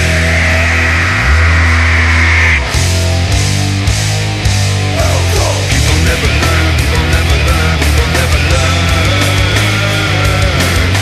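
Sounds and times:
heavy distorted guitar music: 0.0 - 11.0
high whine: 0.0 - 11.0.

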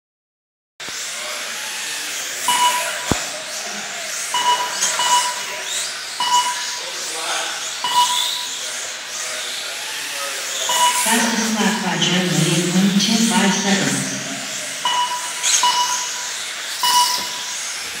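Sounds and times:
hiss of electric rc cars: 0.8 - 11.0, 14.5 - 18.0
short electronic lap-timer beeps: 2.4 - 3.2, 4.3 - 6.8, 7.8 - 8.6, 10.6 - 17.7.

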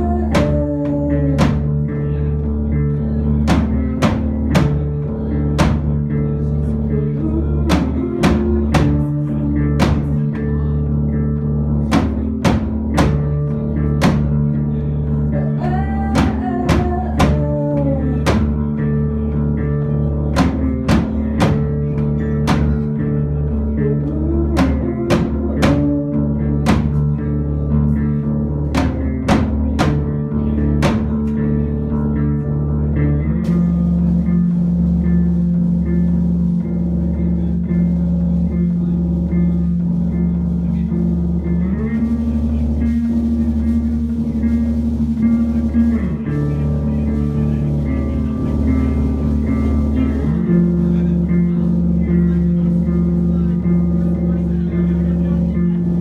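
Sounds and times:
live rock band playing: 0.0 - 56.0
sustained keyboard and bass notes: 0.0 - 56.0.

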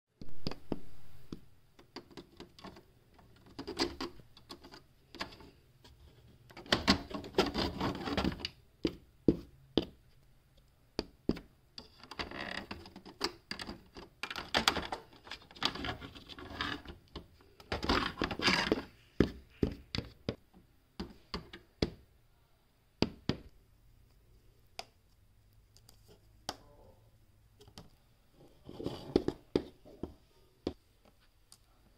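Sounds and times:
plastic figure tapping on plastic: 17.1 - 20.4, 21.0 - 22.0, 23.0 - 23.5.

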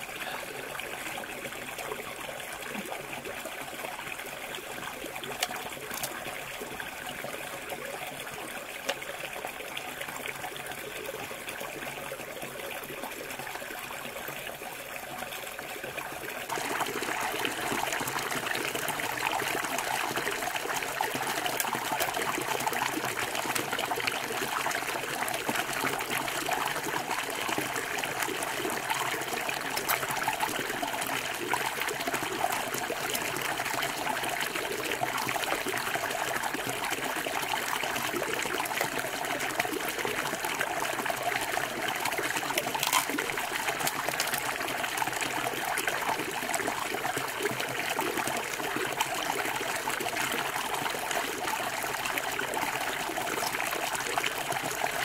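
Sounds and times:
river water trickling: 0.0 - 55.0.

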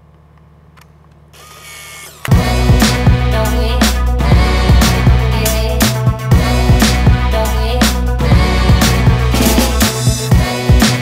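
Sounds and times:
small motor whirring: 1.4 - 2.3.

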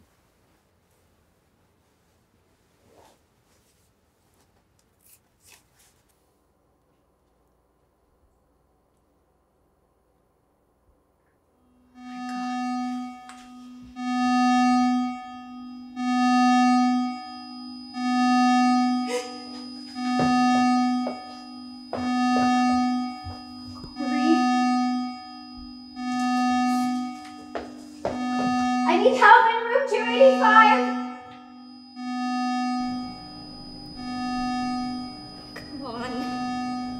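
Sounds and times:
steady tone: 11.6 - 36.9
electronic alarm beeps: 11.9 - 36.9.

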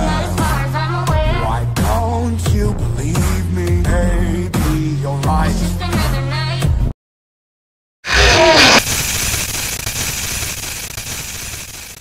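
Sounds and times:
sudden wavering burst: 8.1 - 11.9
tv static hiss: 8.3 - 12.0.

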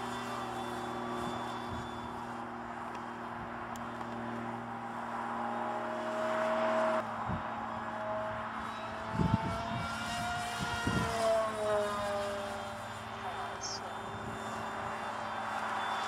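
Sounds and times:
electric motor propeller whining: 0.0 - 16.0.

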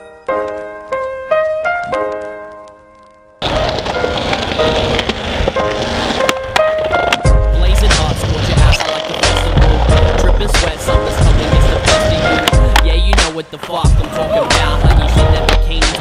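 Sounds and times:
skateboard wheels rolling on concrete: 0.3 - 16.0
skateboard clacks: 3.4 - 16.0
music with deep bass line: 7.3 - 13.3, 13.9 - 16.0.

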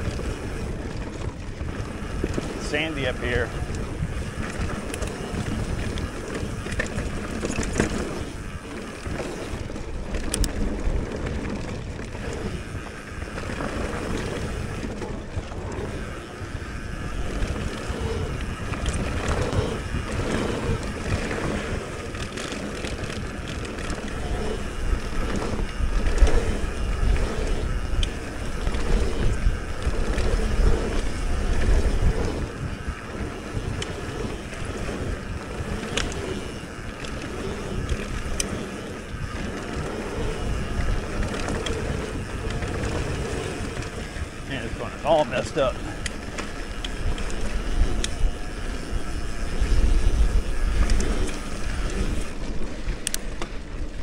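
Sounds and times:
bike rattling: 0.0 - 54.0
tyres rumbling on packed dirt: 0.0 - 54.0
wind rushing over microphone: 0.0 - 54.0.

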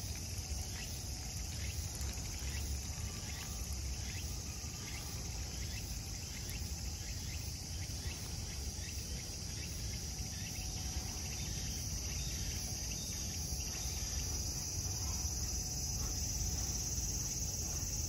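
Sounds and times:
insects singing: 0.0 - 18.0
low steady rumble: 0.1 - 18.0.

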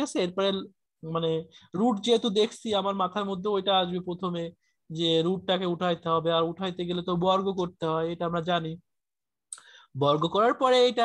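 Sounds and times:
person speaking: 0.0 - 8.9.

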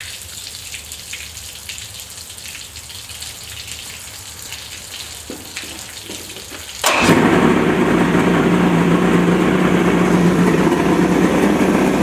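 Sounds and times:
water spraying onto concrete: 0.0 - 7.6
low motor hum: 5.3 - 12.0.

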